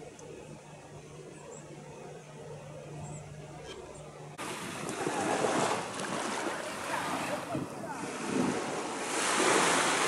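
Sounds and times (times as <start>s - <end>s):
small waves breaking on shore: 4.4s - 10.0s
wind on microphone: 4.4s - 10.0s.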